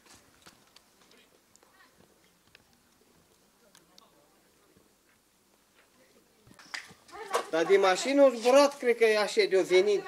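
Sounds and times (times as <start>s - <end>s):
faint clicks and ticks: 0.4s - 4.1s.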